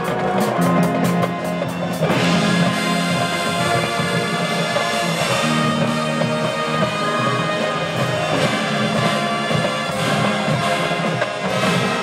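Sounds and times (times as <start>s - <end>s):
marching band playing: 0.0s - 12.0s.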